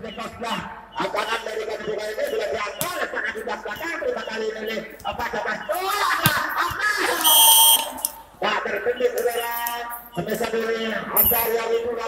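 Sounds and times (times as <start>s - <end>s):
ball being struck: 2.8s - 3.1s, 6.2s - 6.8s
referee's whistle blast: 5.7s - 8.1s.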